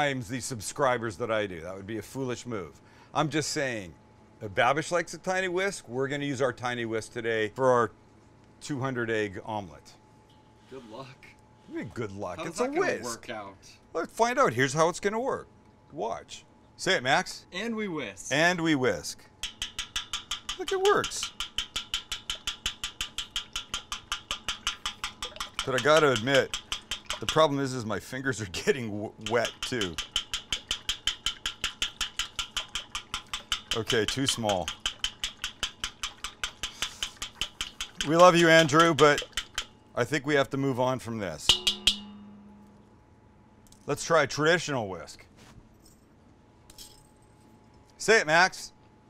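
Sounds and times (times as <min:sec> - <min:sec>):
whisk clicking in metal bowl: 0:19.4 - 0:27.6, 0:29.2 - 0:39.7, 0:41.5 - 0:42.3.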